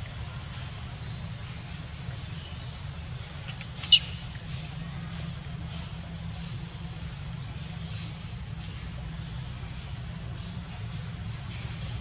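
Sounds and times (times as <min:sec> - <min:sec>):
infant monkey squeaking: 0:02.5 - 0:04.4.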